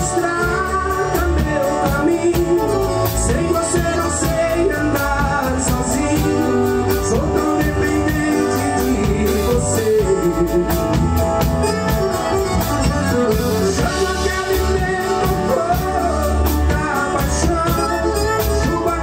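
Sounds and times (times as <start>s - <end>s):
accordion: 0.0s - 19.0s
acoustic guitar: 0.0s - 19.0s
bass guitar: 0.0s - 19.0s
drum kit steady beat: 0.0s - 19.0s
man singing into a microphone: 0.0s - 19.0s.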